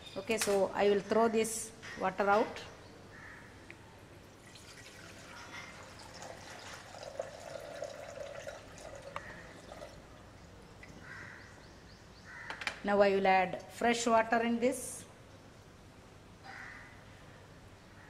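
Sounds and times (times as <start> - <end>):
water trickling and splashing: 4.4 - 11.0.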